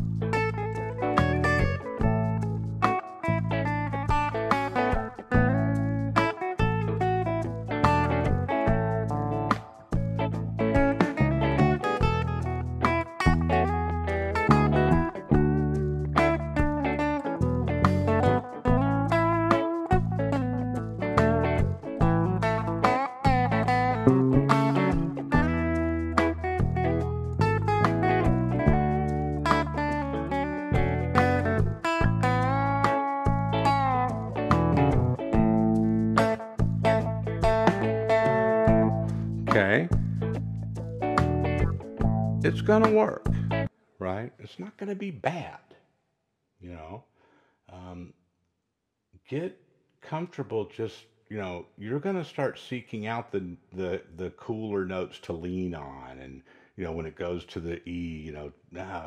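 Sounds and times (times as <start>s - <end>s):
backing track with bass and drums: 0.0s - 43.7s
clean electric guitar lead: 0.0s - 43.7s.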